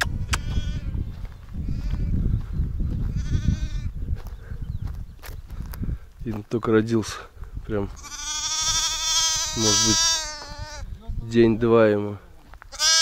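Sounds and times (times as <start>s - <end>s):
lamb bleating: 0.1s - 1.0s, 3.1s - 3.9s, 7.9s - 10.9s, 12.7s - 13.0s.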